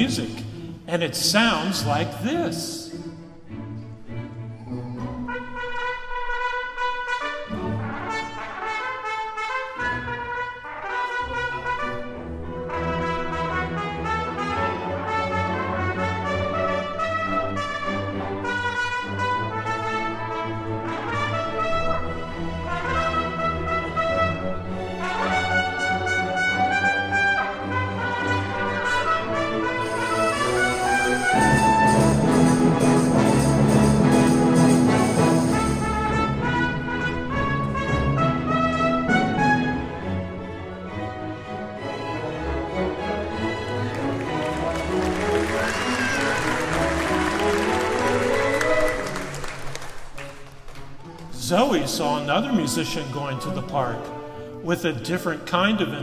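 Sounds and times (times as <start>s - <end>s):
orchestra playing: 0.0s - 50.5s, 51.2s - 56.0s
trumpet melody: 5.3s - 40.2s, 41.2s - 49.8s.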